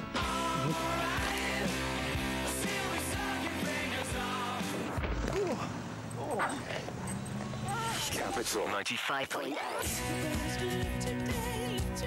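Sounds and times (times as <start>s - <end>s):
person singing ooh: 0.2s - 1.5s.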